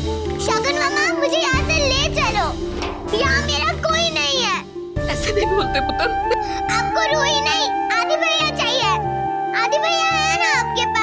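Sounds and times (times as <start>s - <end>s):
background music score: 0.0s - 11.0s.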